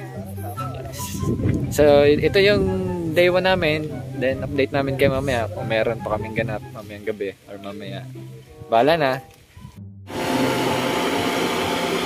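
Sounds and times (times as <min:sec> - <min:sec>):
electric blower fan whirring: 0:10.1 - 0:12.0.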